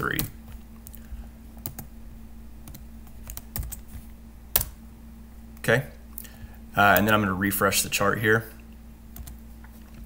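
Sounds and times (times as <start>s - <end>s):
typing on computer keyboard: 2.7s - 3.9s.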